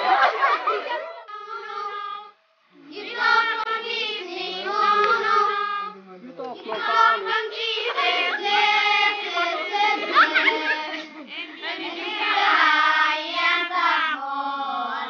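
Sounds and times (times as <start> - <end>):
children singing: 0.2 - 6.0, 6.6 - 15.0.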